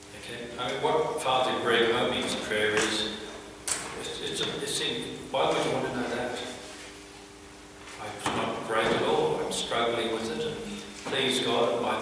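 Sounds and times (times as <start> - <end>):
man speaking into a microphone: 0.1 - 6.6, 8.0 - 12.0.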